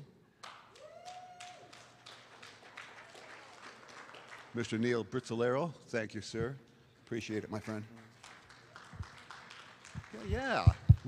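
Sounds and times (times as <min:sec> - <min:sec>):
light applause: 0:00.4 - 0:05.0, 0:07.0 - 0:11.0.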